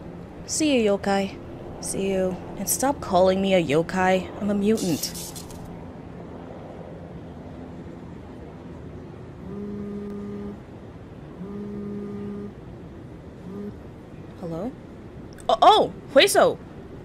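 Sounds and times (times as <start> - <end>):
low steady sci-fi hum: 0.0 - 17.0.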